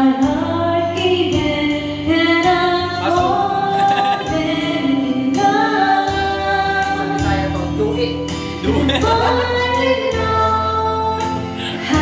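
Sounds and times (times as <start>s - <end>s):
person singing into a microphone: 0.0s - 8.0s, 8.6s - 12.0s
backing track with steady beat: 0.0s - 12.0s.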